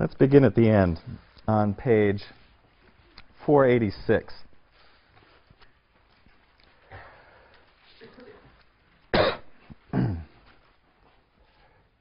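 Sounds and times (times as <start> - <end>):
man coughing: 9.1 - 10.4.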